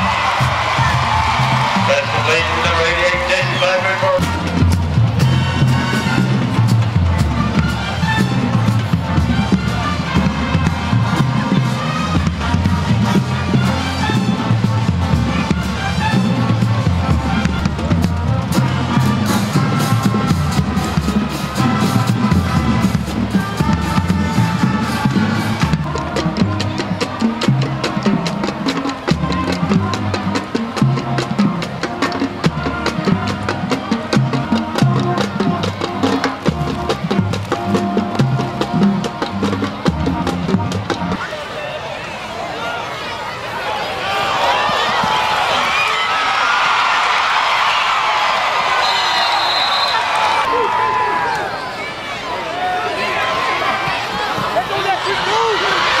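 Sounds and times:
marching drumline with bass drums: 0.0s - 41.2s
brass horns and sousaphones: 0.0s - 41.3s, 48.8s - 50.5s.

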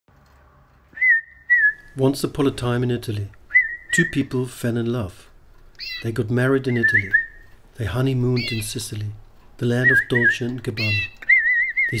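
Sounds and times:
high whistled notes: 1.0s - 2.0s, 3.5s - 4.2s, 6.7s - 7.5s.

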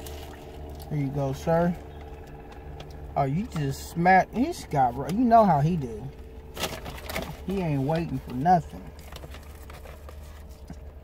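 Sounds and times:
low hum: 0.0s - 11.0s
paper wrapper crinkling: 6.5s - 11.0s.

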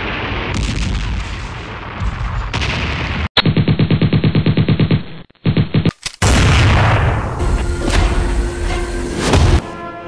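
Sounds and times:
explosions and battle rumble: 0.0s - 4.1s, 6.2s - 8.5s.

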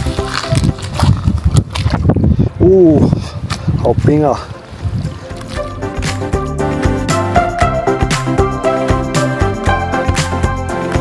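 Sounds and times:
footsteps splashing through shallow water: 0.0s - 2.6s, 3.2s - 6.8s
background music: 0.0s - 11.0s.

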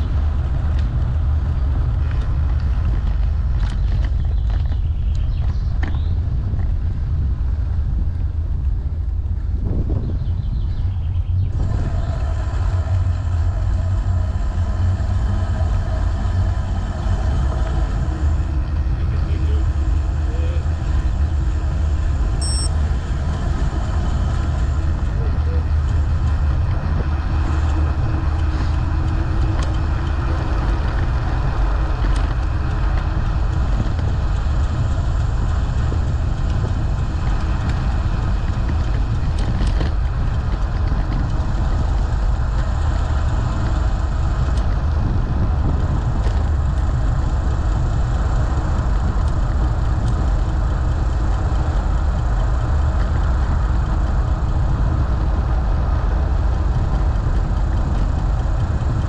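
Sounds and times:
wind rumble on microphone: 0.0s - 59.0s.

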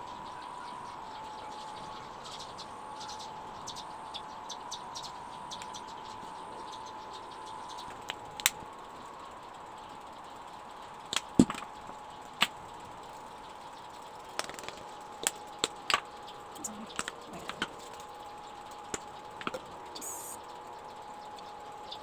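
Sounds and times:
high-pitched hum: 0.0s - 22.0s.

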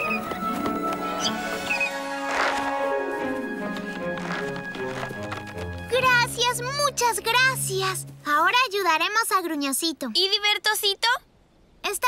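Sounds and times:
cartoon background music: 0.0s - 8.6s.

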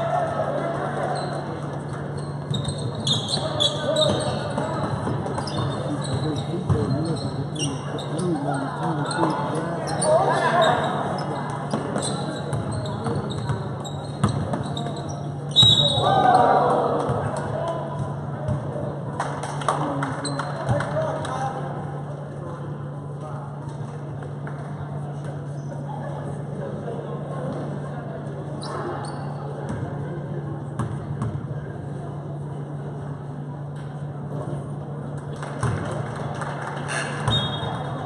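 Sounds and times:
people talking and calling out: 0.0s - 23.7s
shoes squeaking: 1.1s - 16.0s
basketball bouncing on court: 2.4s - 7.4s, 11.6s - 15.1s, 30.8s - 31.5s, 35.6s - 35.9s.

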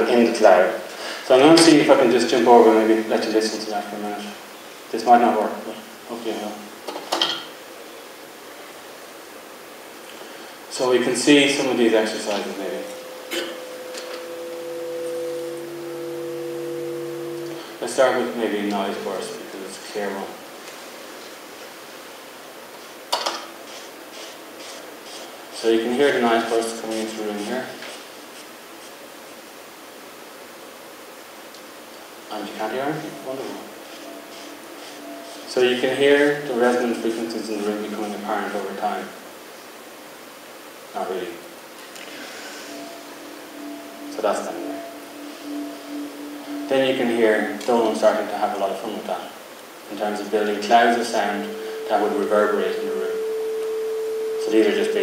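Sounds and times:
steady hiss: 0.0s - 55.0s
held chord over loudspeakers: 11.0s - 19.6s, 42.7s - 49.0s, 50.3s - 55.0s.

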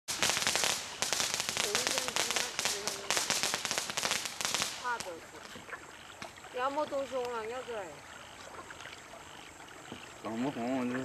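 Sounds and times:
firework crackling: 0.0s - 5.5s.

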